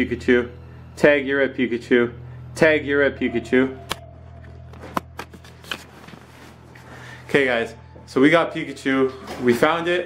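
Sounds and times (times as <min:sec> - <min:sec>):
low steady hum: 0:00.0 - 0:09.6
camera handling clicks and rustles: 0:04.7 - 0:06.3.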